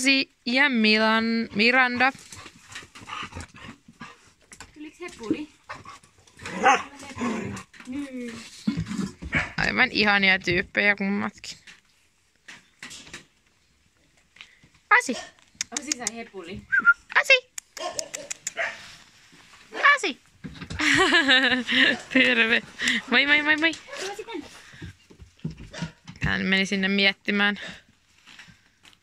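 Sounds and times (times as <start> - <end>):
dogs growling: 5.7 - 7.8
dog barking: 6.5 - 6.9, 17.8 - 18.8.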